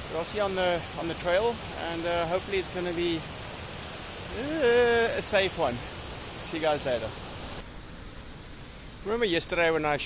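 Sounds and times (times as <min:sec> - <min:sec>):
river pouring over a weir: 0:00.0 - 0:09.9
outdoor hiss: 0:00.0 - 0:10.0.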